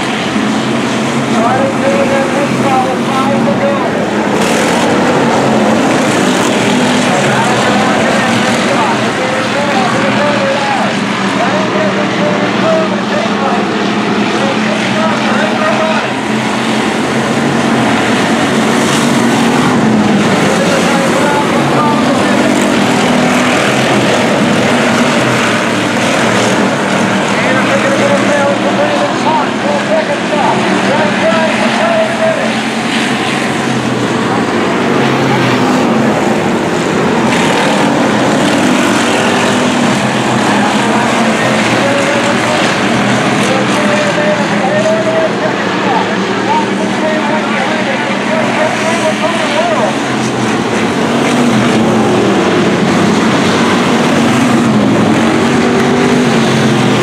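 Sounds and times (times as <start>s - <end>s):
stock car engines racing: 0.0s - 57.0s.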